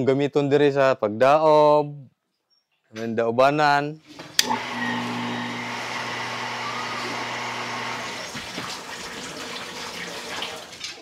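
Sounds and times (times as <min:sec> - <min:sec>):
electric water pump humming: 0:04.1 - 0:10.9.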